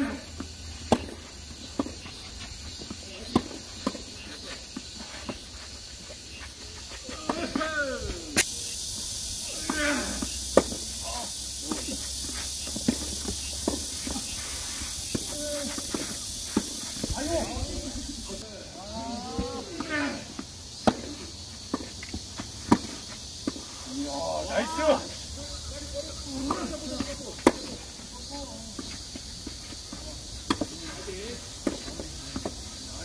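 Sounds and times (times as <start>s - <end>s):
tennis balls struck by rackets: 0.0s - 8.7s, 9.4s - 25.0s, 26.1s - 32.8s
steady high hiss: 0.0s - 33.0s
players shouting: 6.4s - 8.8s, 9.4s - 12.1s, 15.1s - 21.2s, 23.8s - 28.8s.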